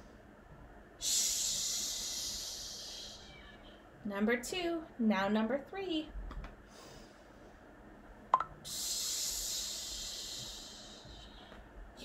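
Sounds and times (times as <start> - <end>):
woman's hissing exhale: 1.0 - 3.3, 8.7 - 11.4.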